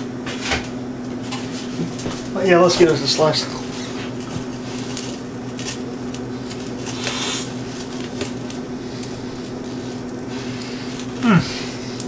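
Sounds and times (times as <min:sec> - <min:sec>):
steady low hum: 0:00.0 - 0:12.0
person chewing pizza: 0:03.7 - 0:12.0.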